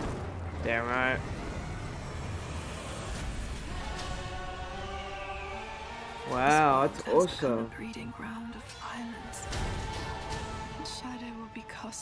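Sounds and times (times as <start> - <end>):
steady rushing noise with deep rumble: 0.0 - 7.0.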